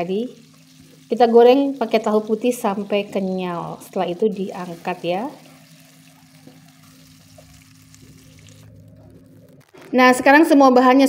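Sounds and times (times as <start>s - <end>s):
tofu sizzling in oil: 0.0s - 9.9s
low steady hum: 0.0s - 11.0s.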